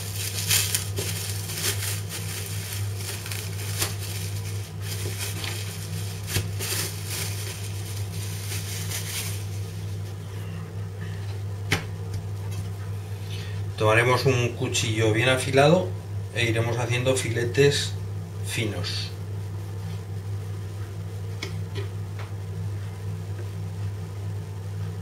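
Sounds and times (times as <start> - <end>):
plastic cling film crinkling: 0.0 - 10.2
steady low hum: 0.0 - 25.0.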